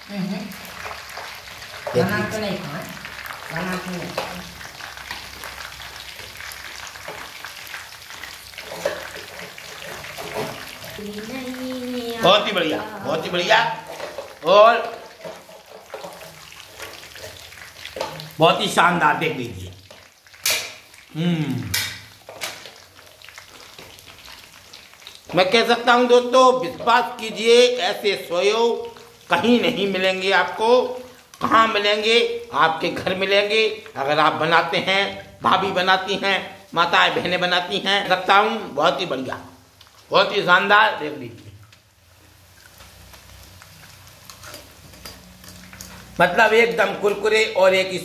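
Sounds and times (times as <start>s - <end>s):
batter deep-frying in hot oil: 0.0s - 48.0s.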